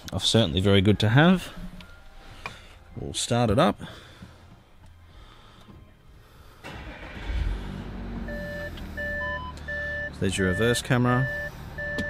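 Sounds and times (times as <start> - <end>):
diesel car engine idling: 6.6 - 12.0
parking sensor beeping: 8.2 - 12.0.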